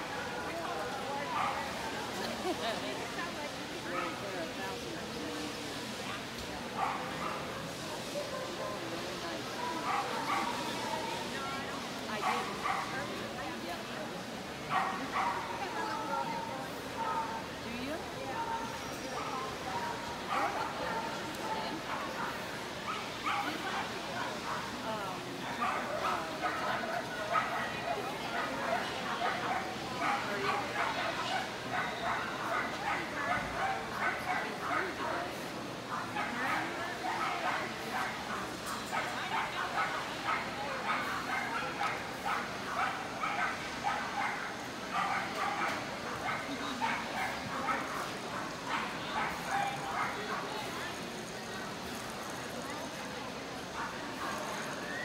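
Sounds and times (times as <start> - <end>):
crowd chatter: 0.0 - 55.0
dogs barking: 6.8 - 7.5, 9.6 - 10.6, 12.2 - 13.0, 14.7 - 15.5, 21.8 - 23.6, 25.5 - 35.0, 35.9 - 50.5.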